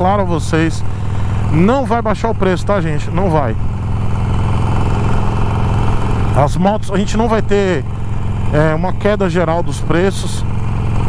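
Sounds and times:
motorcycle engine running: 0:00.0 - 0:11.0
wind and road noise: 0:00.0 - 0:11.0.

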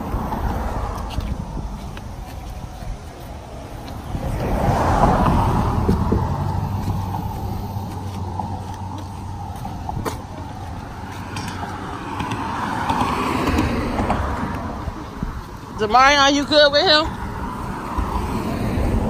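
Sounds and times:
cars passing by: 0:00.0 - 0:19.0.

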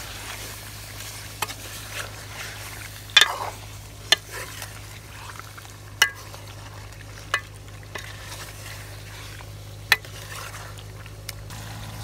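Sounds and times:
frying sizzle: 0:00.0 - 0:12.0
steady low hum: 0:00.0 - 0:12.0.

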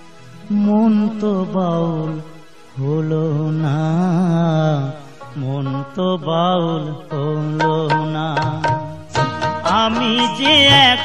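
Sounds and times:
man singing folk song: 0:00.5 - 0:11.0
instrumental accompaniment: 0:05.0 - 0:11.0
sharp percussion strikes: 0:07.6 - 0:11.0.

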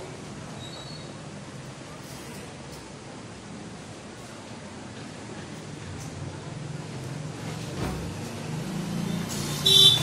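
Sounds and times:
vehicle horn toot: 0:09.6 - 0:10.0.

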